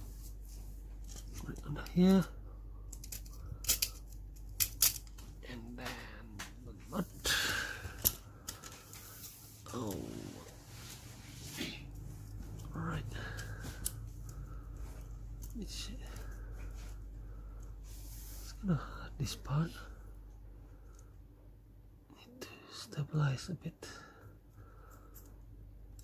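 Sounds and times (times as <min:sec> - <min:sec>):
plastic parts clicking and scraping: 0:01.0 - 0:02.0, 0:02.9 - 0:05.3.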